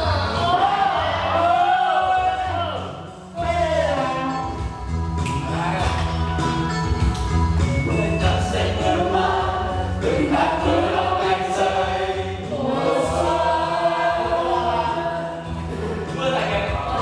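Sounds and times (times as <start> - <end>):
backing music with bass line: 0.0 - 17.0
group singing in chorus: 7.9 - 17.0.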